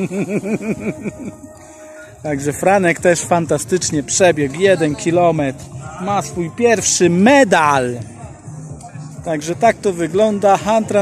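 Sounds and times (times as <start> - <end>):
man laughing: 0.0 - 1.5.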